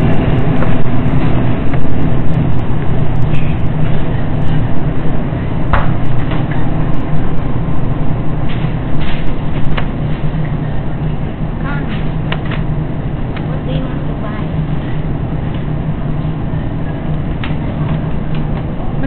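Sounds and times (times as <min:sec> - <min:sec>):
low background hum: 0:00.0 - 0:19.0.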